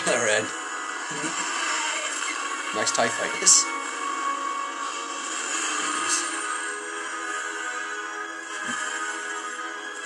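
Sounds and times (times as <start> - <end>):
film trailer soundtrack: 0.0 - 10.0.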